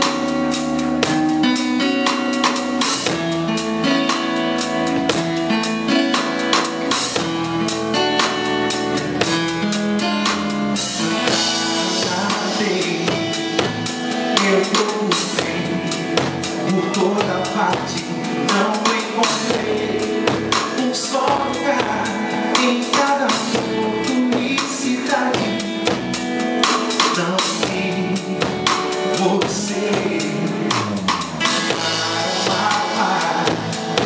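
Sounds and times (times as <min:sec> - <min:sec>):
drum kit playing a steady beat: 0:00.0 - 0:34.0.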